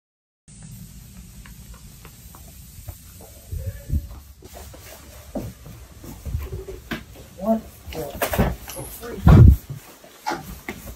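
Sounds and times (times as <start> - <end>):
footsteps: 0.5 - 10.9.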